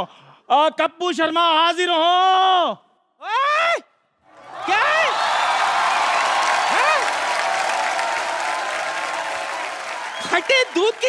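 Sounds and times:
audience applauding: 0:04.4 - 0:11.0.

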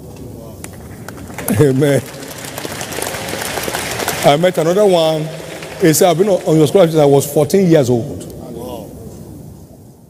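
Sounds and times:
congregation applauding: 0:00.7 - 0:08.0.

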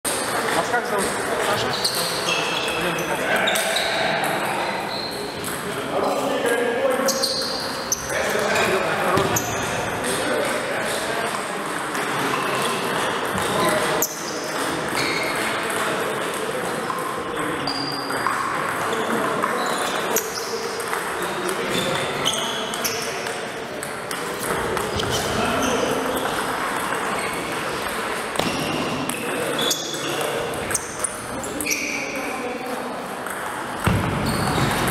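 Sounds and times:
sports hall background noise: 0:00.0 - 0:34.9
table tennis ball pinging: 0:11.3 - 0:31.9, 0:33.1 - 0:34.8.

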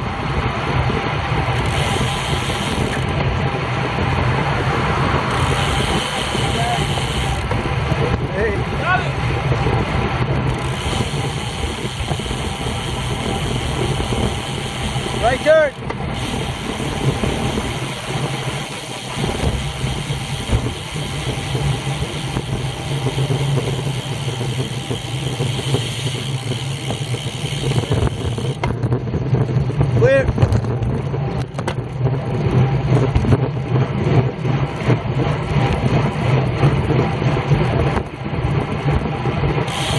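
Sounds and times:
bicycle tyre and road noise: 0:00.0 - 0:39.9
wind rushing over microphone: 0:00.0 - 0:39.9.

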